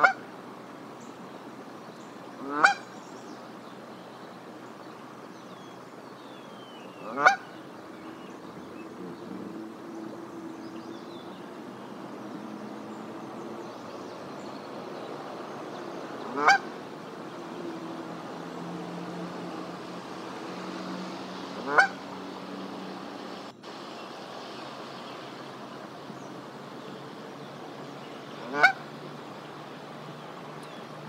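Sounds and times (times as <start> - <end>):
goose honking: 0.0 - 0.2, 2.4 - 2.8, 7.0 - 7.4, 16.2 - 16.8, 21.6 - 22.0, 28.4 - 28.8.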